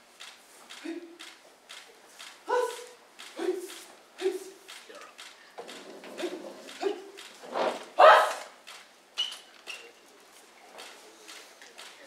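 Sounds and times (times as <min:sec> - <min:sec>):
person shouting kiai: 0:02.4 - 0:04.6, 0:06.2 - 0:07.2, 0:08.0 - 0:08.6.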